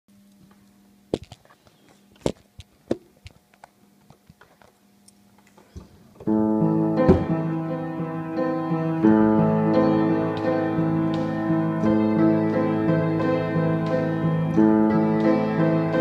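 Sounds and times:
piano chords and melody: 6.2s - 16.0s.

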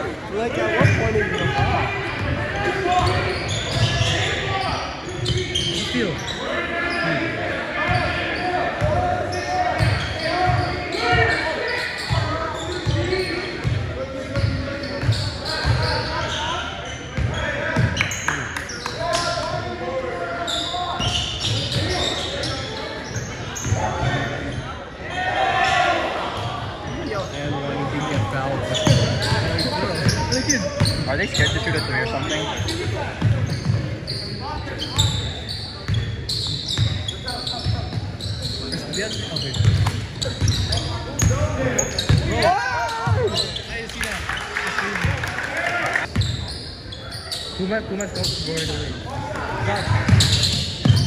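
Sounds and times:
players and crowd talking: 0.0s - 51.0s.

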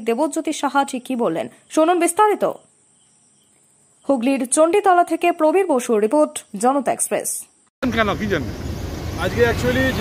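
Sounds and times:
woman narrating: 0.0s - 2.7s, 4.0s - 7.5s.

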